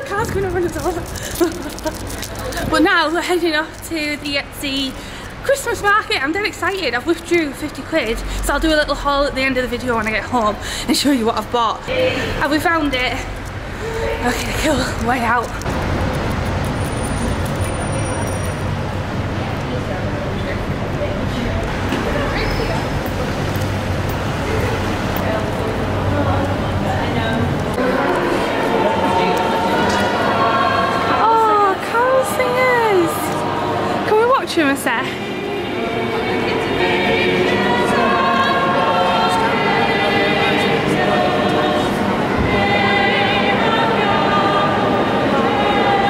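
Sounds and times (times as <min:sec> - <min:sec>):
traffic rumble and hum: 0:00.0 - 0:46.0
group singing a carol: 0:11.8 - 0:15.6, 0:25.0 - 0:46.0.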